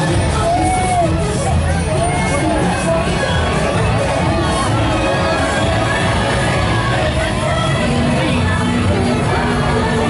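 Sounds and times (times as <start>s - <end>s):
crowd chatter: 0.0s - 10.0s
parade music over loudspeakers: 0.0s - 10.0s.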